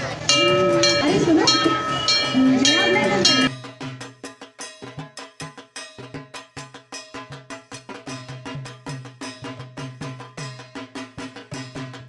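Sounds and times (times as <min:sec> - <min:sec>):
brass temple bell ringing: 0:00.1 - 0:06.2
quick even percussion beat: 0:00.3 - 0:12.0.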